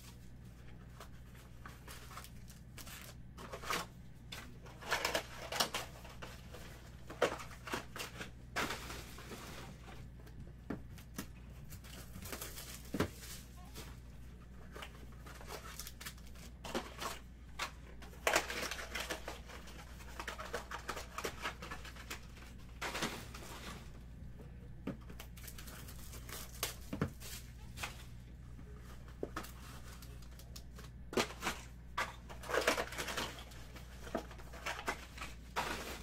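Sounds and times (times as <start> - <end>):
foil crinkling: 1.0 - 3.9, 11.6 - 13.9, 14.6 - 23.9, 25.2 - 28.1, 32.3 - 36.0.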